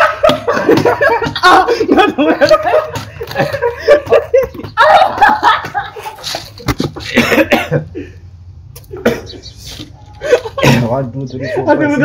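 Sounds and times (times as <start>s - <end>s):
man coughing: 7.0s - 7.9s, 9.0s - 9.5s, 10.6s - 11.0s.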